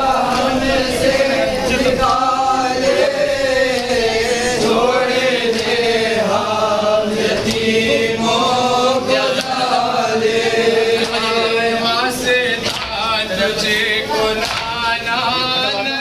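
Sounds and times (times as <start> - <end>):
men chanting a lament: 0.0 - 16.0.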